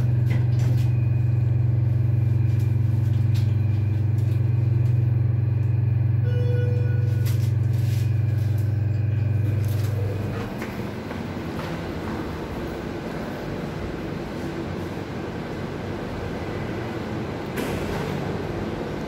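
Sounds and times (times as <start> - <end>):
elevator low hum: 0.0 - 19.0
short electronic beep: 6.2 - 7.4.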